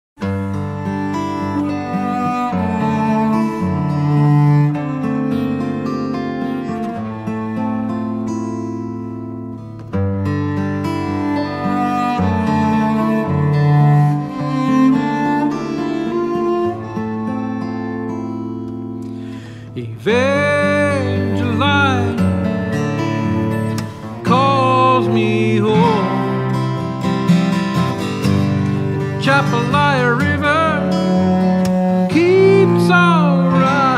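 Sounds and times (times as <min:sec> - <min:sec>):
bowed cello: 0:00.2 - 0:09.2, 0:10.1 - 0:33.9
acoustic guitar: 0:00.2 - 0:33.9.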